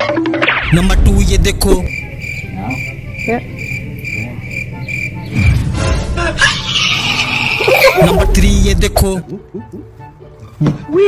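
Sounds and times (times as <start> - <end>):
low rumble: 0.6 - 3.6.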